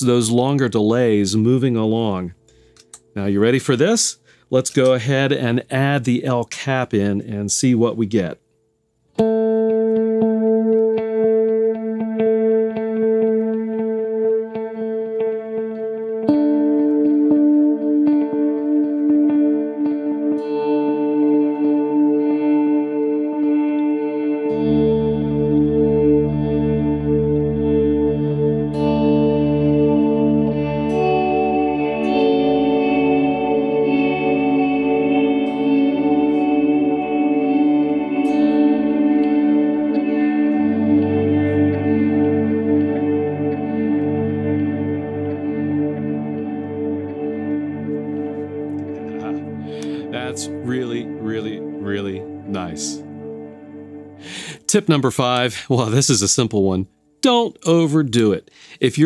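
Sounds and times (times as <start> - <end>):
electric guitar with delay repeats: 9.1 - 56.3.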